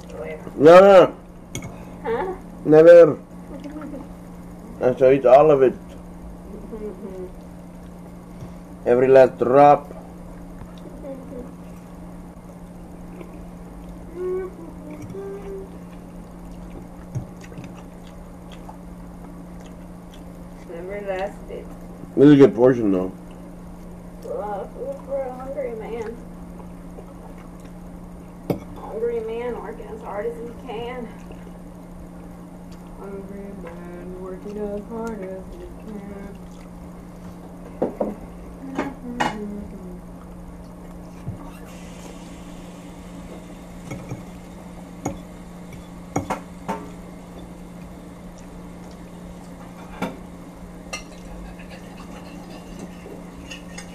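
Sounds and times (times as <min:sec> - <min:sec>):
steady low hum: 0:00.0 - 0:53.9
chewing: 0:15.8 - 0:20.6, 0:26.6 - 0:27.8, 0:36.3 - 0:36.9, 0:47.3 - 0:49.8, 0:51.0 - 0:53.9.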